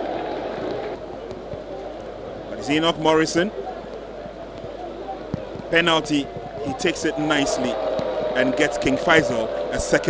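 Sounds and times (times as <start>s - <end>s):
stadium background noise: 0.0s - 10.0s
faint distant voices: 1.0s - 10.0s.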